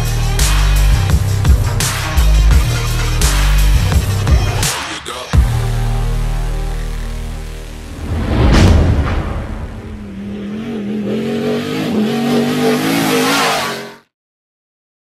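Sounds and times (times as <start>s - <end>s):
car engine revving: 6.7s - 14.0s
sweeping whoosh and hit: 7.8s - 11.3s.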